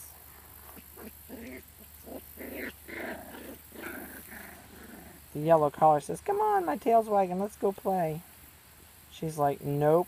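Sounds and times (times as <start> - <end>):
puppies growling in play: 0.0 - 5.4.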